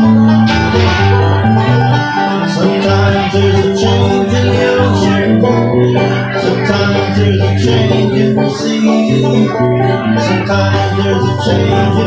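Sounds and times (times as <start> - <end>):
acoustic guitar bass-note rhythm: 0.0 - 12.0
plucked banjo notes: 0.0 - 12.0.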